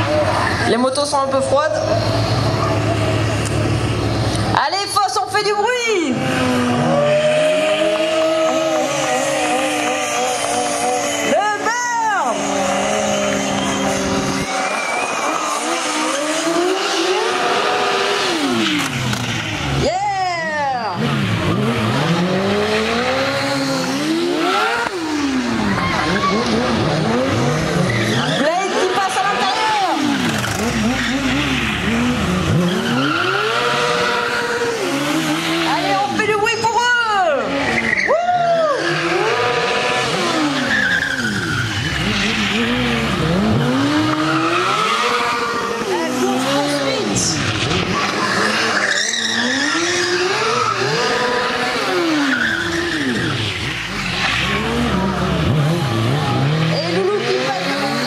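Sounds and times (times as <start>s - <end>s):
motorcycle engines revving: 0.0s - 58.0s
tyre squeal: 6.8s - 18.9s, 22.9s - 36.1s, 37.5s - 57.4s.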